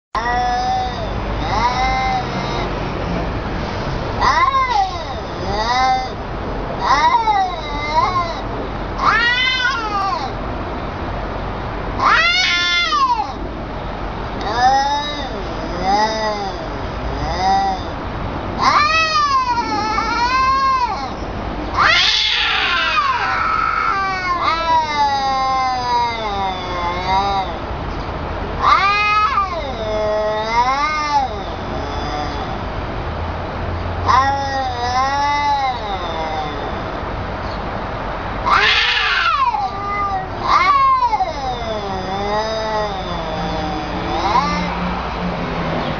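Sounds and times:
cat yowling: 0.2s - 2.8s, 4.2s - 6.2s, 6.8s - 10.4s, 12.0s - 13.4s, 14.4s - 18.0s, 18.6s - 27.7s, 28.6s - 32.8s, 34.0s - 37.6s, 38.3s - 45.2s.

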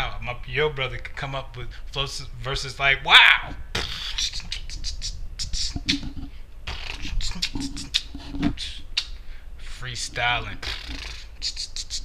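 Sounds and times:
man beatboxing: 2.1s - 9.2s, 9.9s - 12.0s.

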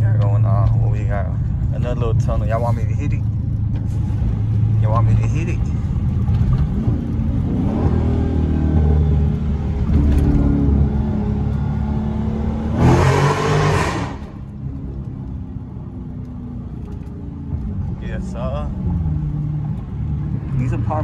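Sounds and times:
car engine accelerating: 0.0s - 21.0s
engine and exhaust burst: 3.8s - 14.6s.

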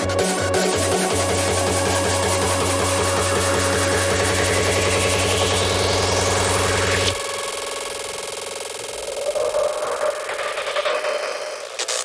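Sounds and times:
pulsing synthesizer note: 0.0s - 12.0s
rising synth sweep: 0.0s - 12.0s.

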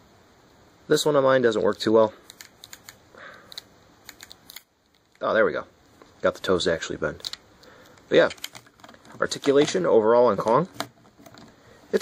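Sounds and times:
plastic clicks: 7.2s - 9.8s.

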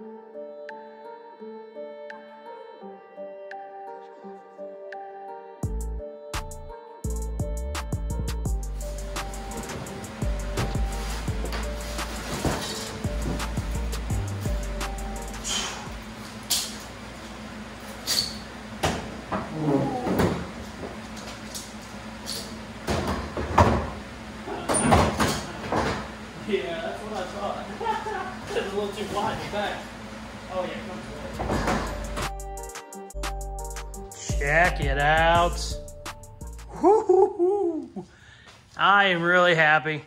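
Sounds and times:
music with heavy bass: 5.6s - 16.1s, 31.8s - 36.8s.

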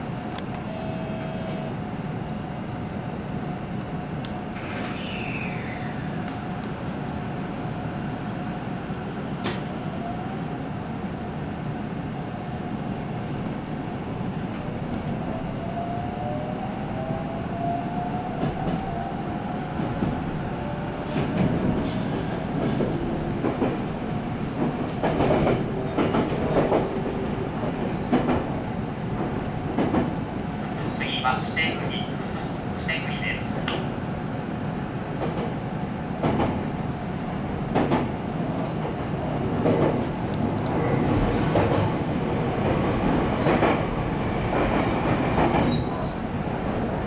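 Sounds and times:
train running noise: 17.8s - 47.0s.

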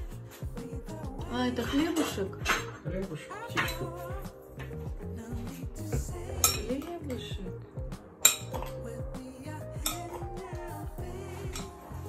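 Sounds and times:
background music: 0.0s - 12.0s
spoon clinking glass bowl: 6.3s - 6.9s, 8.2s - 8.8s.

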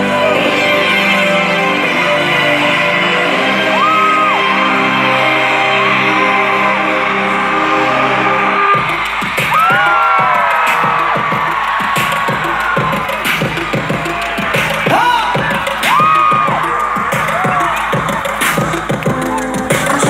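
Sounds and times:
backing music: 0.0s - 20.0s
crowd screaming and whooping: 0.0s - 20.0s.

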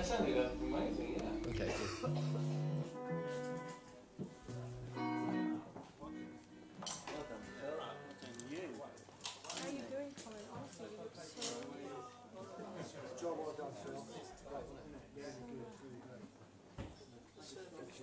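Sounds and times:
plucked guitar notes: 0.0s - 8.2s
quiet talking: 0.0s - 18.0s.

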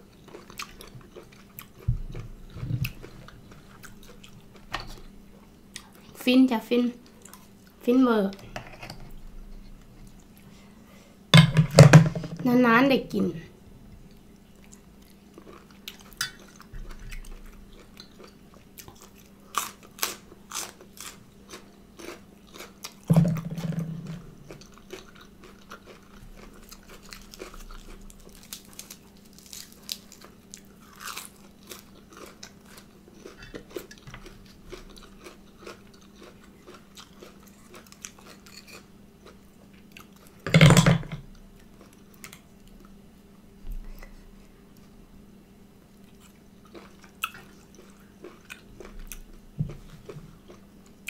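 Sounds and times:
chewing and crunching: 0.0s - 6.2s, 7.0s - 7.8s, 14.1s - 40.4s, 41.3s - 43.0s, 45.9s - 51.0s.

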